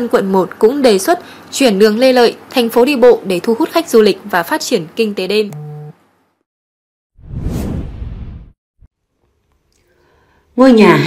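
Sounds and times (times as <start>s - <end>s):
whoosh noise sweep: 7.2s - 8.6s.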